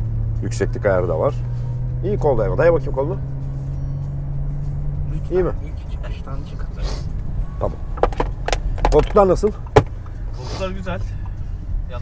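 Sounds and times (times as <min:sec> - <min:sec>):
car engine drone: 0:00.0 - 0:12.0
road noise: 0:00.0 - 0:12.0.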